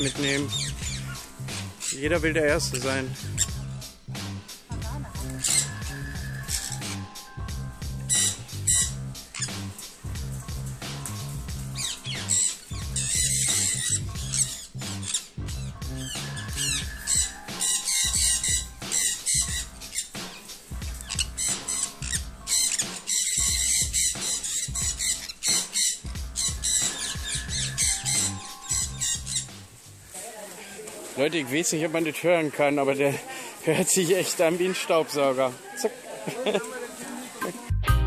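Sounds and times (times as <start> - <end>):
parrots squawking: 0.0 - 3.8, 5.1 - 7.3, 7.9 - 10.0, 11.4 - 29.8
background music with beat: 0.0 - 30.0, 37.4 - 38.0.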